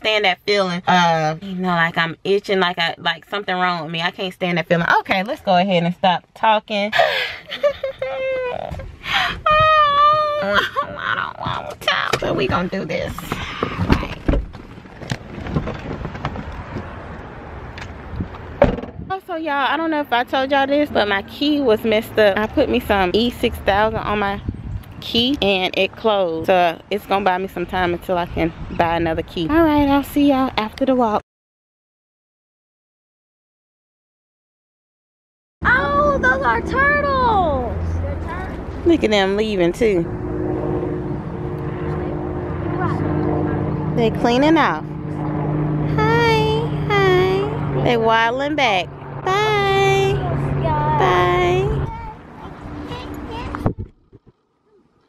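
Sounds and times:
knocks and clunks: 11.4s - 17.0s, 17.8s - 19.1s
engine drone: 35.6s - 55.0s.

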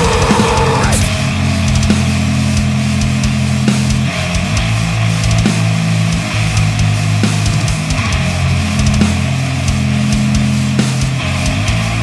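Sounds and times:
distorted guitars and bass: 0.0s - 12.0s.

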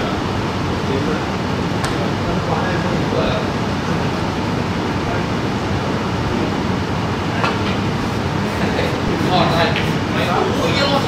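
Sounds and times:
room rumble and hiss: 0.0s - 11.0s.

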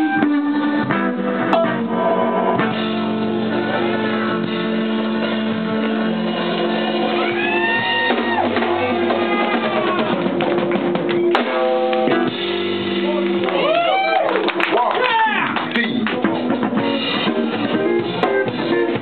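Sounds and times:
electric guitar lead: 0.0s - 14.5s, 16.0s - 19.0s
blues band playing: 0.0s - 19.0s.

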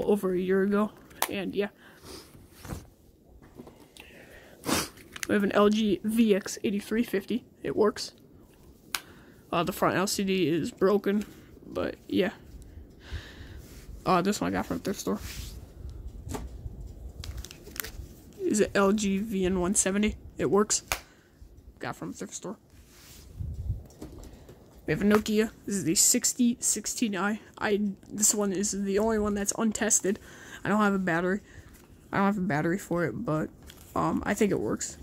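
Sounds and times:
phone handling clicks and rustles: 0.9s - 1.5s, 5.0s - 5.5s, 16.1s - 18.1s.

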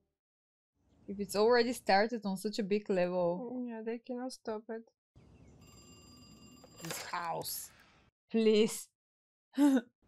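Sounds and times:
telephone bell ringing: 5.6s - 7.3s.

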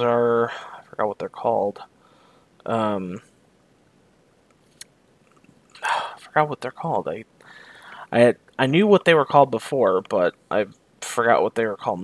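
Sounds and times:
man speaking: 0.0s - 1.9s, 2.6s - 3.3s, 5.8s - 7.3s, 8.0s - 12.0s.

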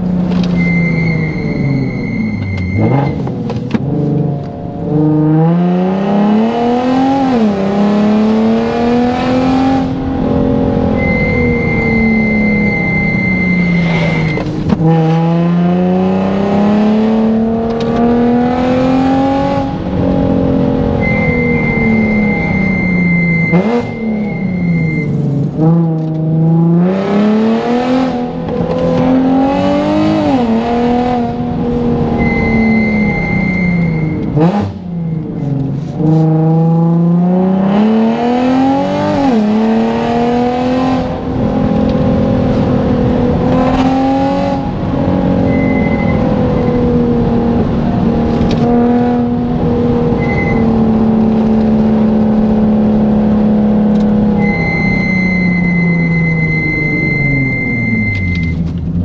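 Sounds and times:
sharp rev blips: 0.0s - 3.5s, 4.2s - 26.0s, 26.6s - 35.4s, 43.4s - 47.1s, 48.6s - 52.5s, 53.6s - 58.7s
car engine revving: 0.0s - 59.0s
steady high tone: 0.5s - 3.2s, 9.6s - 14.6s, 20.6s - 25.2s, 32.1s - 35.4s, 54.4s - 58.6s.

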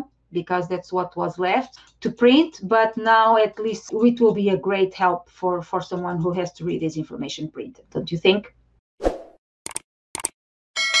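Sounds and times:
short clicks: 9.7s - 10.4s
bell chime: 10.8s - 11.0s.

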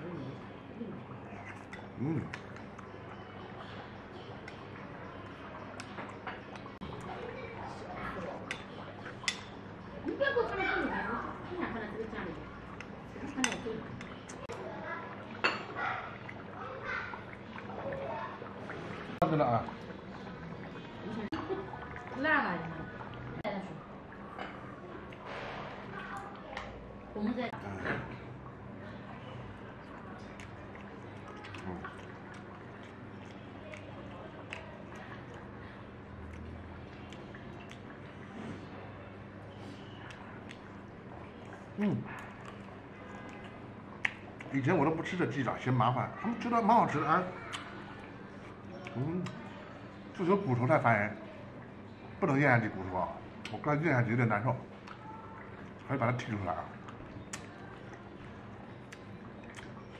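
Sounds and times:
soft wet food sounds: 0.0s - 59.9s.

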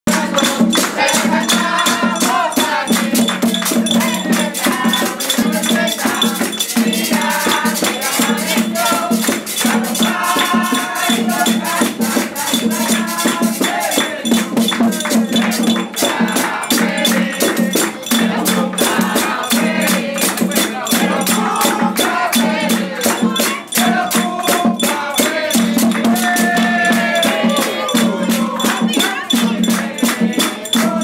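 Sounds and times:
drum beating: 0.1s - 31.0s
group singing: 0.1s - 31.0s
hand-clapping: 0.1s - 31.0s
metal scraper rhythm: 0.1s - 31.0s.

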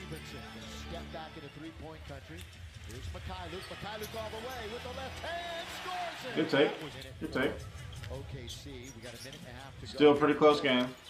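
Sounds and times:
arena crowd noise: 0.0s - 11.0s
commentators talking: 0.0s - 11.0s.

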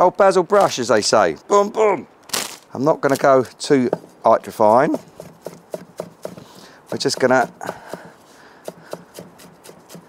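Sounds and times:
knife chopping on wooden board: 3.9s - 10.0s.

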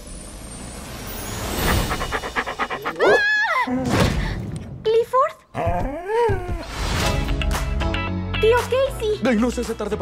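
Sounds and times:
dog sniffing: 1.9s - 3.0s.

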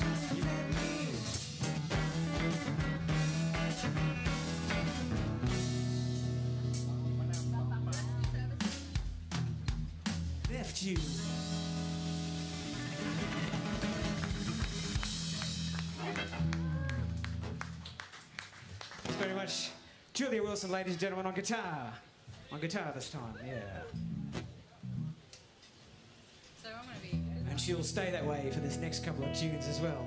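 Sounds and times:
drum kit hits: 0.0s - 6.9s
electric guitar chords: 0.0s - 9.2s, 11.0s - 17.7s, 27.2s - 30.0s
electric bass: 0.0s - 17.8s, 24.0s - 25.2s, 27.2s - 30.0s.

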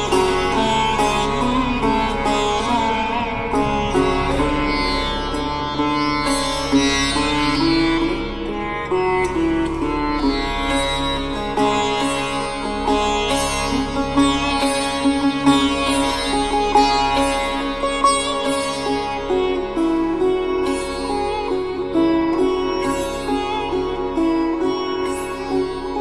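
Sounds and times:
steady low drone: 0.0s - 24.1s
plucked string melody: 0.0s - 26.0s.

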